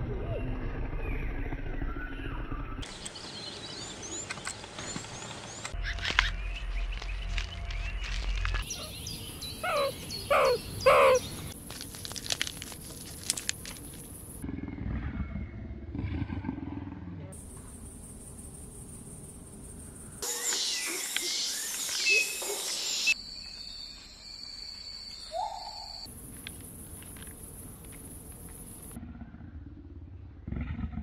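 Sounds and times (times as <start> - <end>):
birds chirping: 1.0 - 11.6, 17.7 - 29.0.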